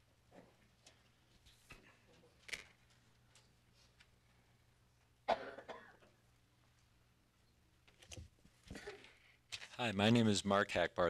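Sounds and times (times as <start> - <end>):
person coughing: 5.2 - 6.2.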